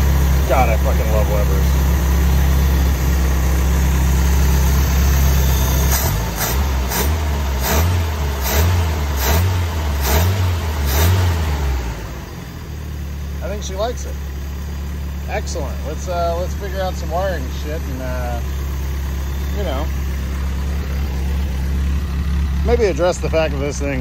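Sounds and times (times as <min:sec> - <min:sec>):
car engine revving and idling: 0:00.0 - 0:24.0.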